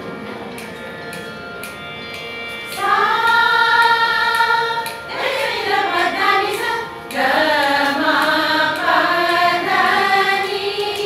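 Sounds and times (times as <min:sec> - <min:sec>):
women singing sustained note: 0:02.8 - 0:11.0.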